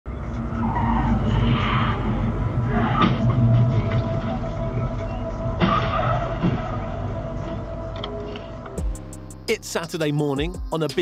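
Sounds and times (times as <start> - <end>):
road and tyre noise: 0.1 - 8.8
heavy vehicle engine drone: 0.1 - 9.5.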